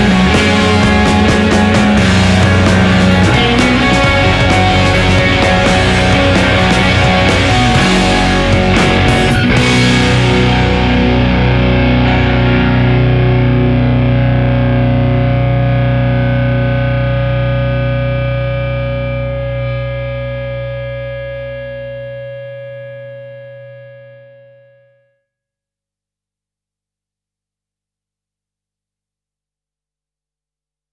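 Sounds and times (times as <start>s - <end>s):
low bass note: 0.0s - 22.2s
distorted electric guitar chord: 0.0s - 25.0s.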